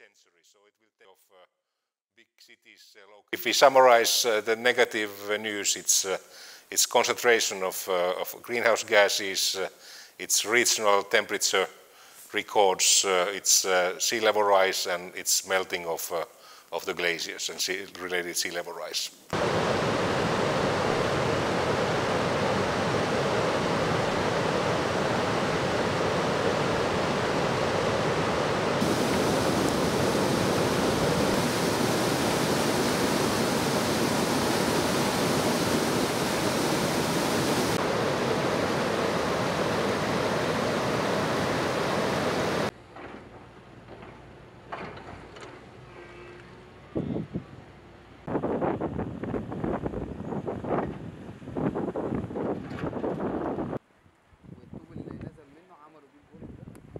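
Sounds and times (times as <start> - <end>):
meltwater rushing: 19.4 - 42.7.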